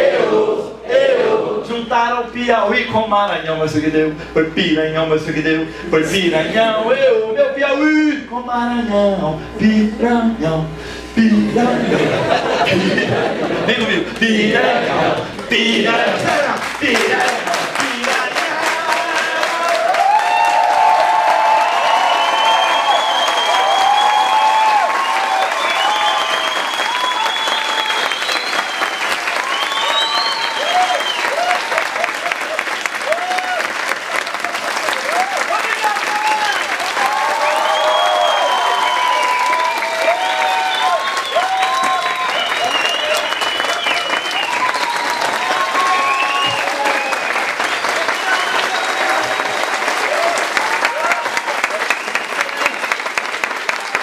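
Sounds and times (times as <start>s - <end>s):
crowd cheering and shouting: 11.5s - 28.5s, 29.3s - 52.8s
crowd applauding: 11.7s - 54.0s
rhythmic clapping: 12.7s - 54.0s.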